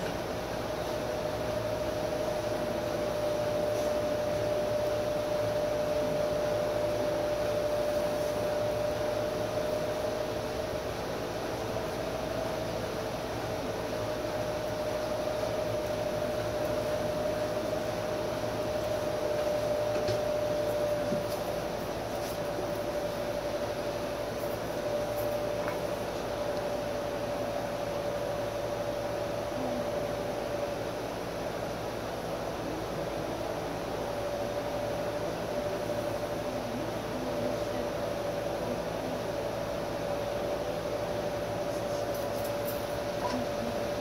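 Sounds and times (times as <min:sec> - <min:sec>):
pedestal fan whirring: 0:00.0 - 0:44.0.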